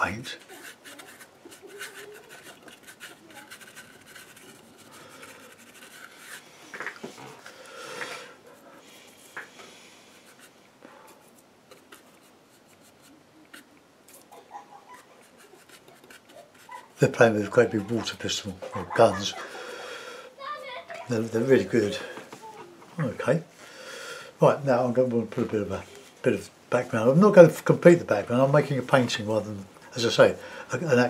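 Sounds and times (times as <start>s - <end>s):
paintbrush scratching on board: 0.4s - 7.4s, 11.2s - 19.6s.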